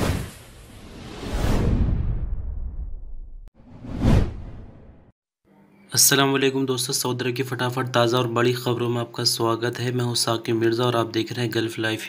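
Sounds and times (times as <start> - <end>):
whoosh sound effects: 0.0 - 3.0, 3.6 - 5.0.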